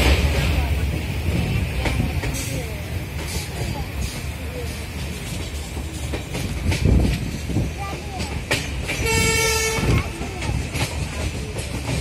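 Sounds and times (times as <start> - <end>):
train wheels rumbling on track: 0.0 - 12.0
train horn: 9.0 - 10.2.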